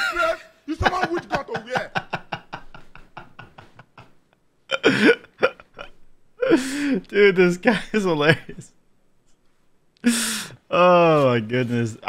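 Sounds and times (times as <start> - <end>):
man laughing: 0.0 - 7.0.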